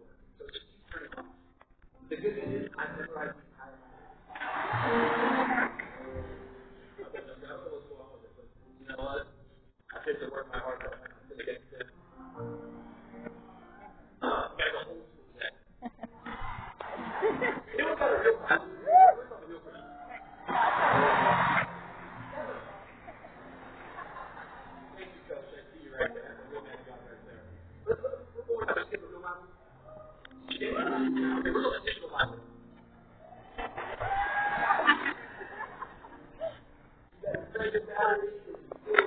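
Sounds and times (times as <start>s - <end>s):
crowd noise burst: 4.3s - 7.0s, 16.2s - 19.1s, 19.8s - 25.4s, 33.2s - 36.3s
indistinct voices: 9.9s - 32.5s.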